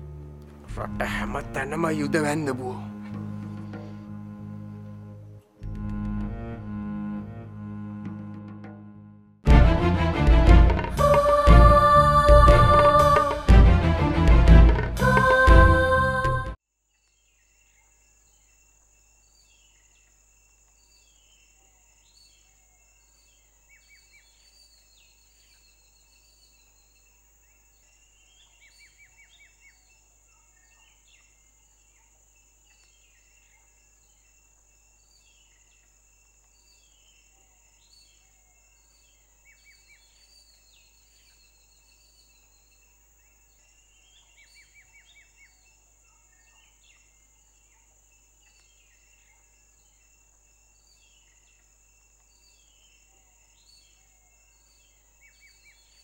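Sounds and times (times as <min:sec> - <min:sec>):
birds chirping: 0:00.0 - 0:05.5.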